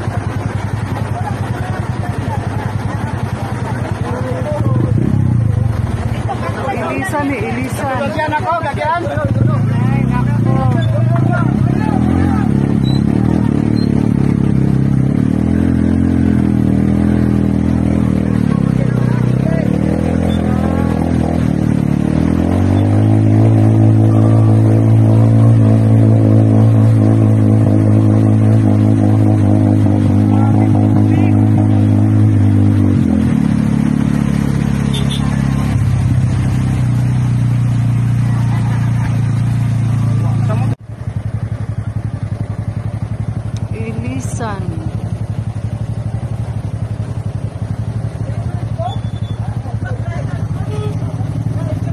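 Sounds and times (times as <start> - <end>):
low pulsing engine: 0.0 - 51.9
vehicle engine running: 0.0 - 51.9.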